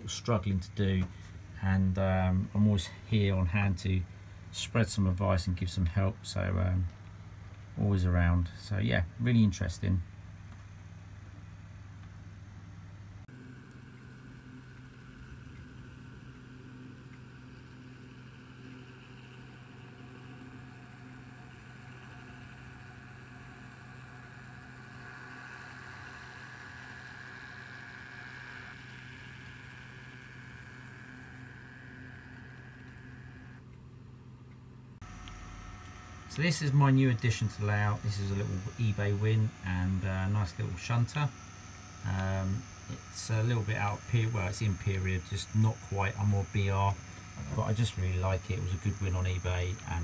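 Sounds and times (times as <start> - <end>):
motor whine: 13.2 - 50.0
model train low hum: 13.4 - 33.7.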